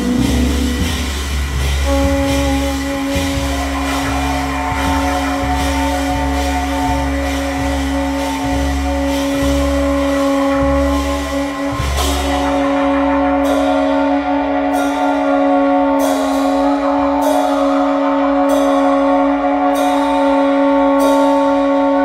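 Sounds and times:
cymbal crash: 0.0s - 22.0s
drum and cymbal strikes: 0.0s - 22.0s
upright bass notes: 0.0s - 22.0s.

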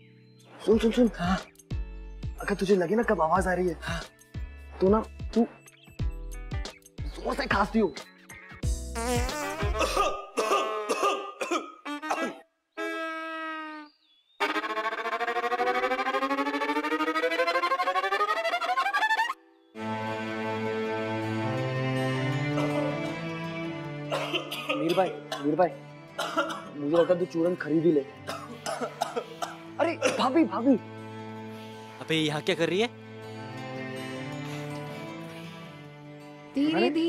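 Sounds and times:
background music: 0.0s - 12.3s, 14.4s - 37.0s
person clearing throat: 9.6s - 12.5s, 24.1s - 25.5s, 26.2s - 26.7s, 28.3s - 30.3s
person coughing: 9.6s - 12.5s, 24.1s - 25.5s, 26.2s - 26.7s, 28.3s - 30.4s.

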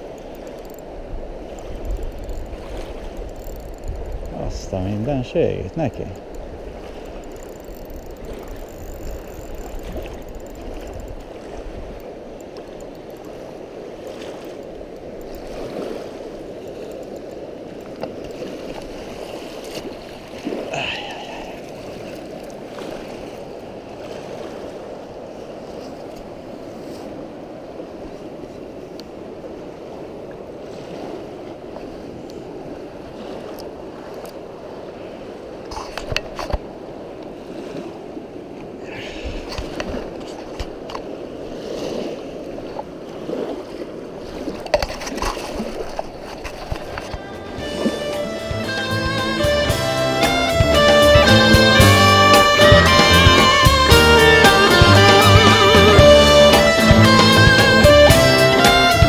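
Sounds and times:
fast-flowing river rushing: 32.6s - 59.0s.

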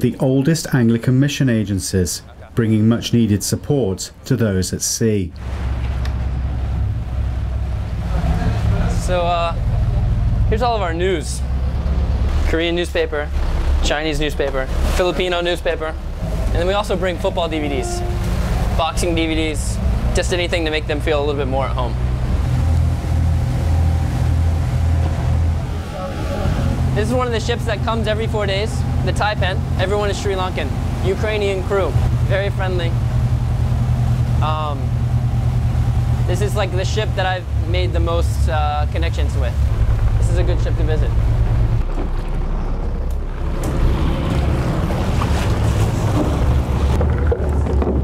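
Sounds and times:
water noise: 0.0s - 48.0s
wind: 0.0s - 48.0s
boat engine droning: 5.4s - 48.0s.

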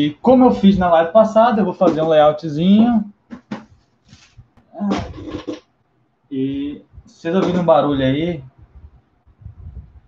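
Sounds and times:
chair creaking: 2.8s - 5.7s.

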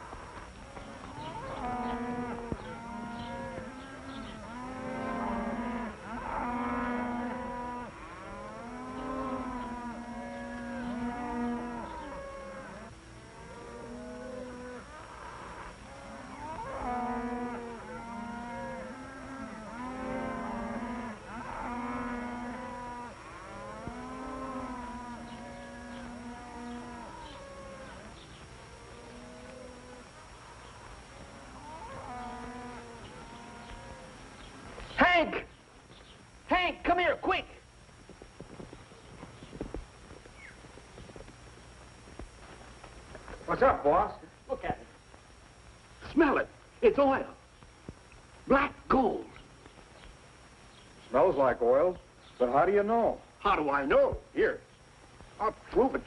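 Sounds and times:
cattle mooing: 0.8s - 30.1s, 31.3s - 34.2s.

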